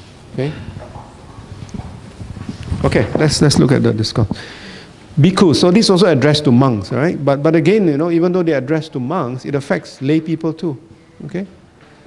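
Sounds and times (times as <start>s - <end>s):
microphone handling knocks: 0.8s - 4.4s
man speaking: 5.2s - 11.6s.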